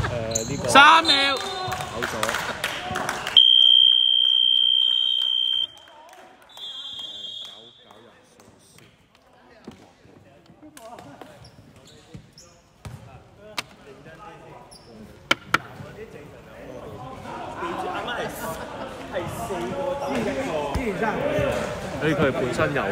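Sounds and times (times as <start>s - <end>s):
buzzer high tone: 3.4s - 5.7s.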